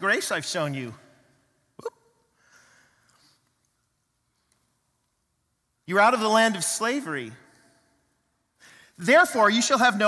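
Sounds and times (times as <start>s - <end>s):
soft intake of breath: 2.4s - 3.5s, 8.6s - 9.0s.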